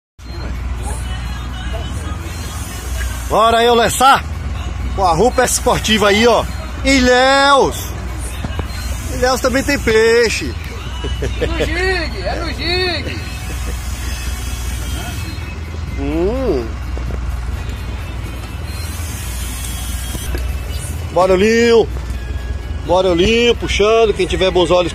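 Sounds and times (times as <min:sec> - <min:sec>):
boat engine low rumble: 0:00.2 - 0:24.9
wind: 0:00.2 - 0:24.9
water hiss: 0:02.4 - 0:03.8, 0:18.8 - 0:20.3.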